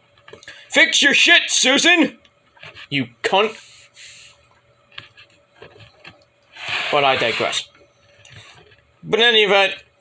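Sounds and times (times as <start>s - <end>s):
man speaking: 6.8s - 7.7s.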